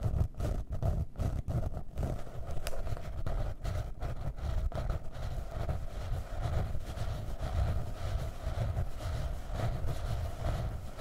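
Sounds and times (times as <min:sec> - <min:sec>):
fingernails scratching notebook cover: 0:00.0 - 0:11.0.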